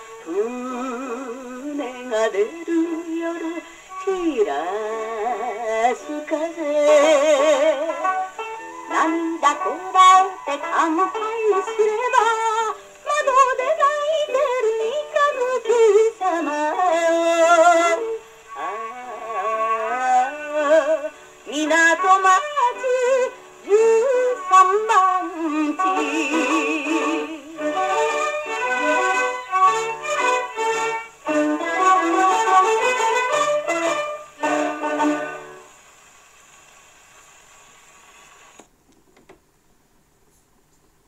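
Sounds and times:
song on gramophone record: 0.0 - 39.5.

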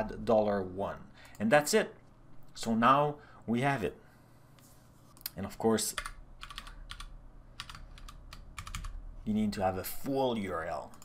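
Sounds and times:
computer keyboard typing: 5.9 - 9.0.

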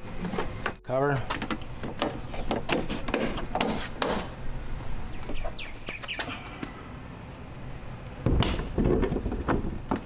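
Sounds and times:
faint bird chirps: 5.1 - 6.9.

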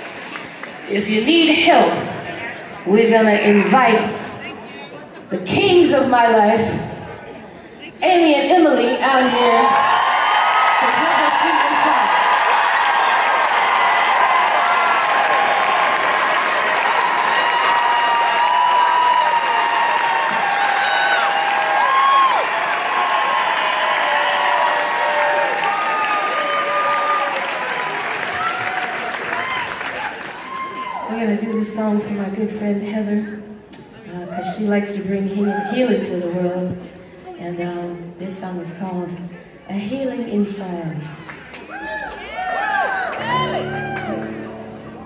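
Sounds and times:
audience clapping: 0.0 - 0.9, 9.6 - 31.0, 41.2 - 44.6
whoops and shouts: 16.8 - 31.2, 35.4 - 35.8, 41.7 - 44.4.

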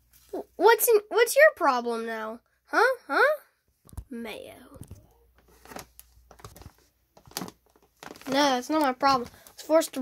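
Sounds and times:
rustles of plastic packaging: 5.4 - 10.0.

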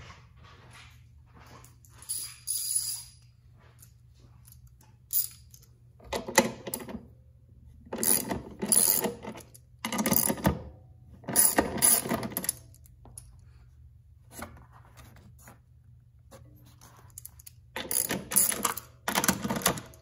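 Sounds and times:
socket ratchet clicking: 17.2 - 19.9.

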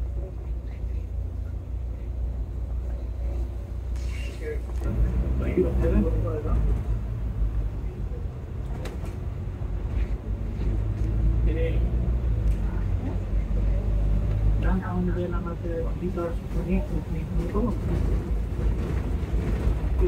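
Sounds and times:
bus diesel engine drone: 0.0 - 20.0
road noise: 0.0 - 20.0.

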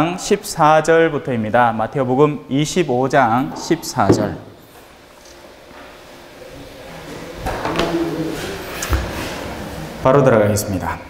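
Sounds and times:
microphone handling rubbing: 3.4 - 5.2
sharp knocks on microphone: 4.1 - 4.5.

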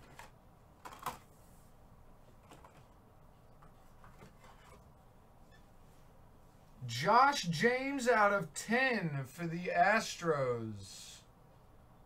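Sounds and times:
trading cards clicking and rustling: 0.0 - 1.3.

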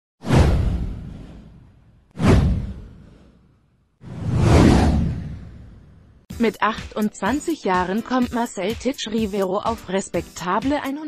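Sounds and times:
whoosh sound effect: 0.2 - 3.4, 4.0 - 6.0.

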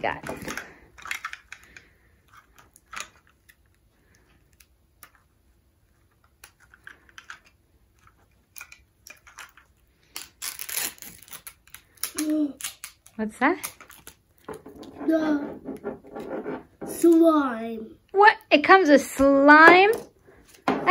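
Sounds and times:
paper wrapping rustling: 9.2 - 14.5.

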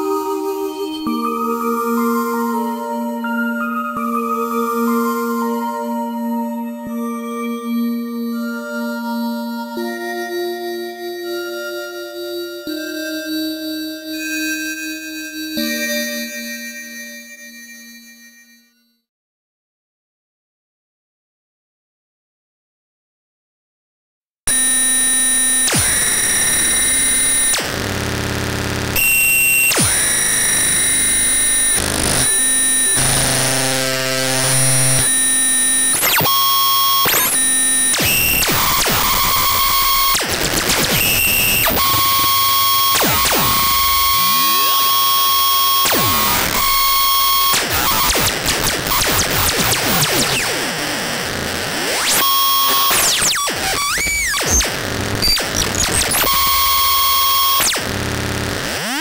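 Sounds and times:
harsh electronic music: 24.5 - 59.0.

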